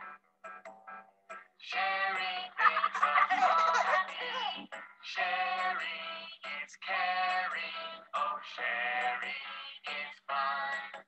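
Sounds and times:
backing music: 0:00.0 - 0:11.0
bright sung vocals: 0:01.6 - 0:11.0.

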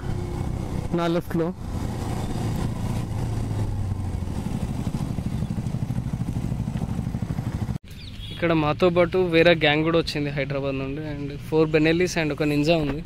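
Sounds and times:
motorcycle engine at low revs: 0:00.0 - 0:08.3.

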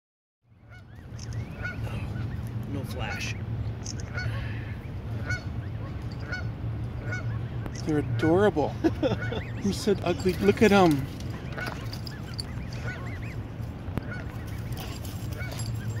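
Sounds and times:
low steady rumble: 0:00.5 - 0:16.0
steady low hum: 0:00.5 - 0:16.0
goslings peeping: 0:00.6 - 0:16.0.

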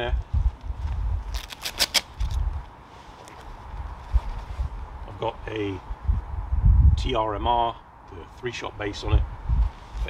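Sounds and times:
wind rumble on microphone: 0:00.0 - 0:02.8, 0:03.5 - 0:10.0.

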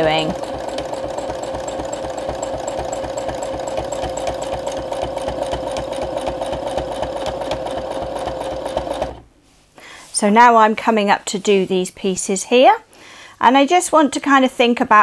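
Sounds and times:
sewing machine stitching: 0:00.0 - 0:09.3.

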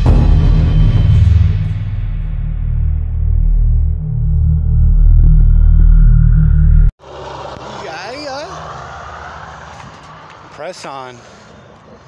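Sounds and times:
intro music with bass drone: 0:00.0 - 0:06.9
road traffic noise: 0:06.6 - 0:12.0
car passing: 0:06.7 - 0:12.0.

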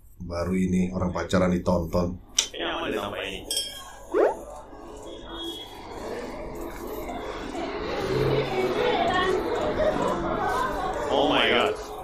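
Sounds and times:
upward-gliding vocal sound: 0:05.8 - 0:12.0.

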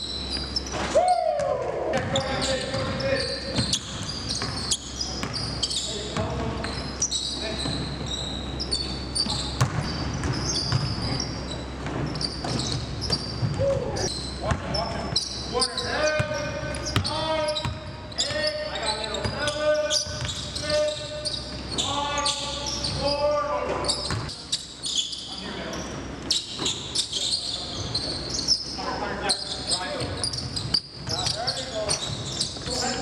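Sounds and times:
sneakers squeaking: 0:00.0 - 0:33.0.

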